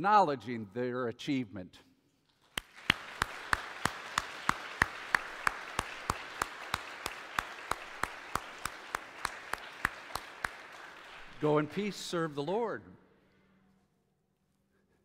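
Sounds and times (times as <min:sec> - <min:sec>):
close hands clapping steadily: 0:02.4 - 0:12.4
congregation applauding: 0:02.4 - 0:12.6.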